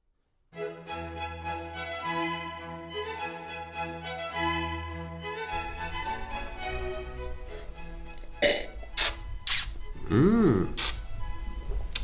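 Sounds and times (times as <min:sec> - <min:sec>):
soft string music: 0:00.5 - 0:12.0
loud wine slurp: 0:09.0 - 0:09.8.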